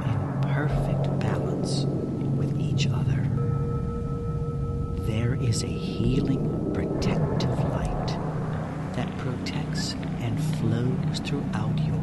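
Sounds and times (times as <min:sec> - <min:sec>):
person speaking: 0:00.0 - 0:03.4, 0:05.0 - 0:08.2, 0:09.0 - 0:12.0
soft background music: 0:00.0 - 0:12.0.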